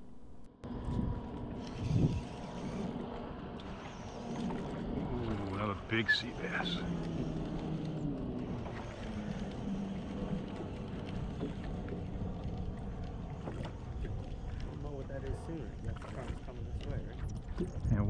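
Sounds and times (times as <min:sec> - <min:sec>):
faint low hum: 0:00.0 - 0:18.0
water around a boat: 0:00.0 - 0:18.0
wind: 0:00.0 - 0:18.0.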